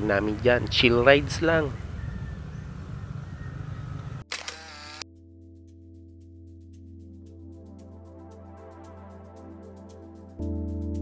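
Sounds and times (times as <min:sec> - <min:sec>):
motorcycle engine and wind: 0:00.0 - 0:04.3
soft music with ticking beat: 0:05.0 - 0:11.0.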